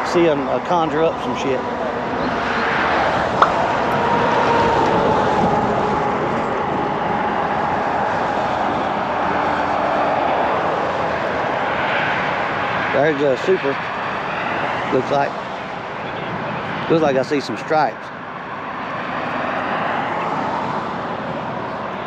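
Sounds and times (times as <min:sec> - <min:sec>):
engine drone: 0:00.0 - 0:22.0.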